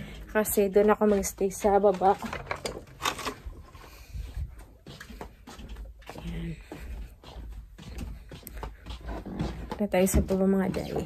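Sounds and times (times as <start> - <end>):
footsteps: 0.0 - 11.0.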